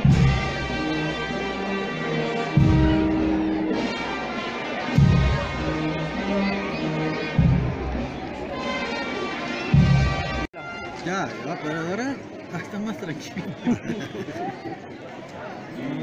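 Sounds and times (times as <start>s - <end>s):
band playing slow music: 0.0s - 6.1s
crowd voices: 0.0s - 16.0s.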